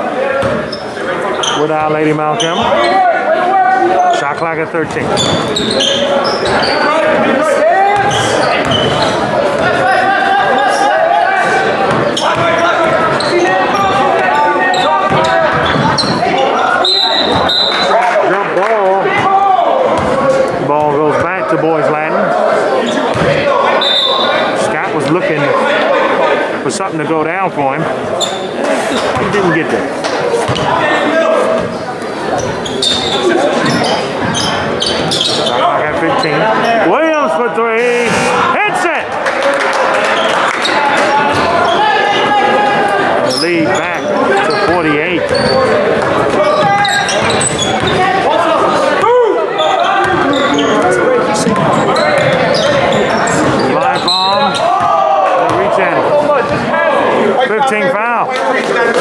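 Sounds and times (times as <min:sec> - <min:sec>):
hubbub of voices echoing: 0:00.0 - 0:59.0
basketball bouncing on wooden floor: 0:00.4 - 0:00.6, 0:20.0 - 0:20.2, 0:23.1 - 0:23.4, 0:45.3 - 0:48.0, 0:51.5 - 0:52.4.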